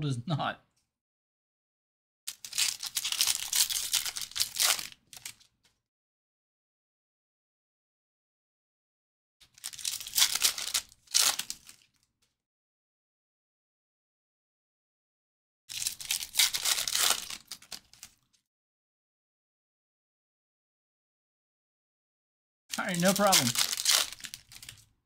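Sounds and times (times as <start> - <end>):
foil wrappers tearing and crinkling: 2.3 - 5.5, 9.5 - 12.0, 15.7 - 18.3, 22.7 - 24.9.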